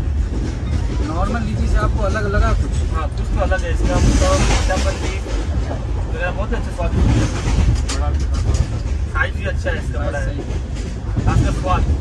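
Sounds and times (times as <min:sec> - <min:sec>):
train coach rumbling on track: 0:00.0 - 0:12.0.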